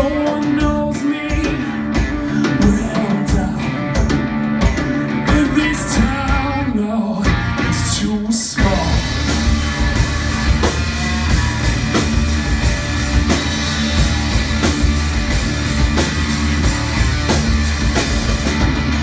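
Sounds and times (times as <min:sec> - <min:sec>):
electric bass line: 0:00.0 - 0:19.0
electric guitar: 0:00.0 - 0:19.0
drum kit hits: 0:08.6 - 0:19.0.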